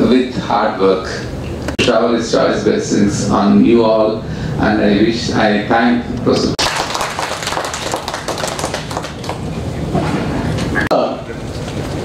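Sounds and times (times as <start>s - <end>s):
audience applauding: 6.6s - 9.9s.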